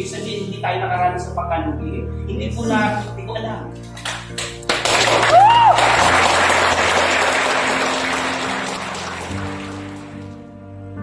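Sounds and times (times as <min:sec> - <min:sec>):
soft background music: 0:00.0 - 0:11.0
applause: 0:04.0 - 0:10.4.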